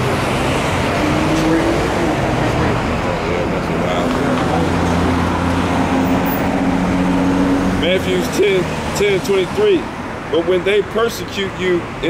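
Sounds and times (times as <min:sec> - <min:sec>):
road traffic noise: 0:00.0 - 0:12.0
vehicle engine humming: 0:00.0 - 0:12.0.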